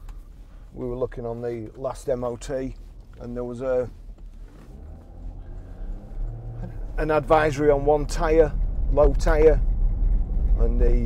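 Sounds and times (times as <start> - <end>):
engine and road rumble in car: 0.0 - 11.0.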